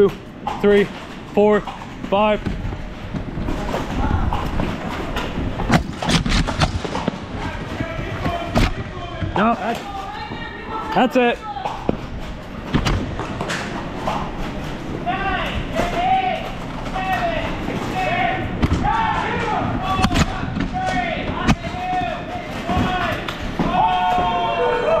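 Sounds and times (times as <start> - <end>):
voices calling out: 13.5 - 25.0.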